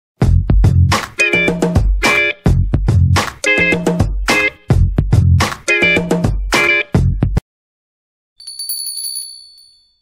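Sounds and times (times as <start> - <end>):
small bell rung rapidly: 8.4 - 10.0.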